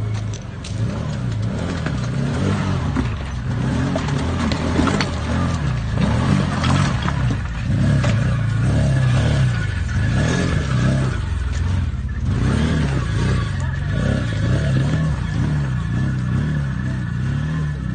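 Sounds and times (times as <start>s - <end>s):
utility vehicle engine revving: 0.0s - 17.9s.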